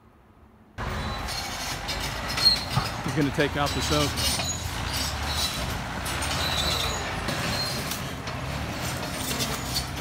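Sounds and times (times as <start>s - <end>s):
bulldozer diesel engine: 0.8s - 10.0s
steel tracks clanking: 0.8s - 10.0s.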